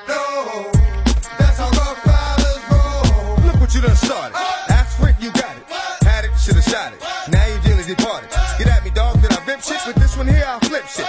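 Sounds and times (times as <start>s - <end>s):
rapping over a heavy bass beat: 0.1s - 11.0s.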